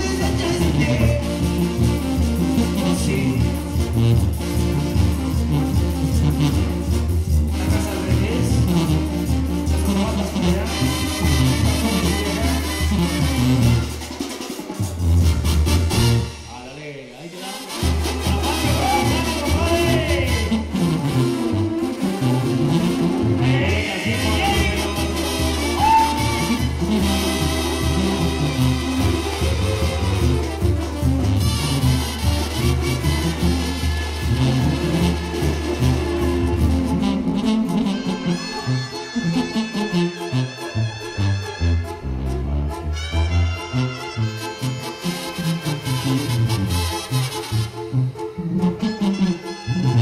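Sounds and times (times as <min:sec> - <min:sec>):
brass band playing: 0:00.0 - 0:50.0
sousaphone bass notes: 0:32.6 - 0:44.4.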